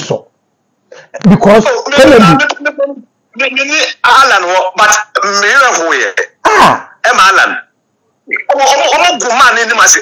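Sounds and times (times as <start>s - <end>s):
man speaking: 1.2s - 10.0s.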